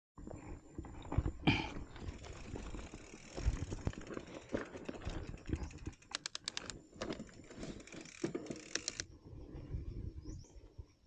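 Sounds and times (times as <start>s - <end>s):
bike handling knocks and clatter: 0.9s - 9.0s.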